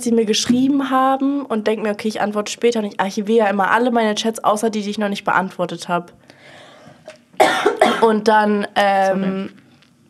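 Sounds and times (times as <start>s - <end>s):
soft breath: 6.2s - 7.1s
person coughing: 7.1s - 8.2s.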